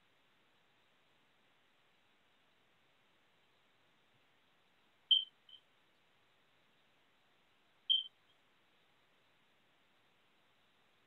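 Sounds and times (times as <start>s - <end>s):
short high-pitched electronic beeps: 5.1s - 5.6s, 7.9s - 8.2s.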